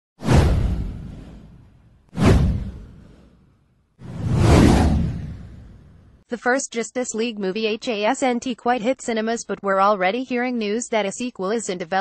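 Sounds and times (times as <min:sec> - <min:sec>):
deep whoosh sound effects: 0:00.2 - 0:06.2.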